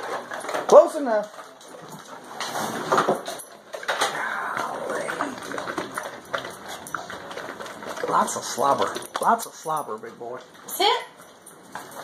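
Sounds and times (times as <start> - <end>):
dogs chewing and snuffling: 0.0 - 12.0.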